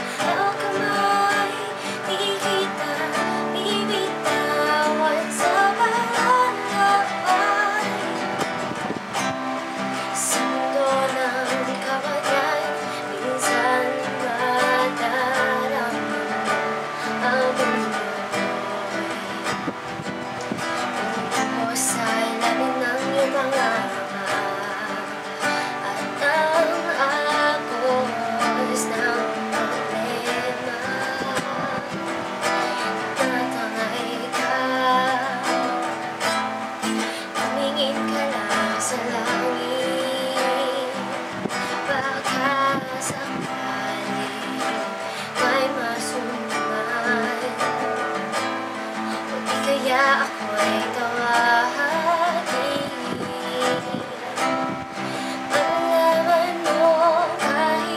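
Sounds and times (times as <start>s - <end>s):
acoustic guitar strumming: 0.0s - 57.9s
woman singing: 0.0s - 57.9s.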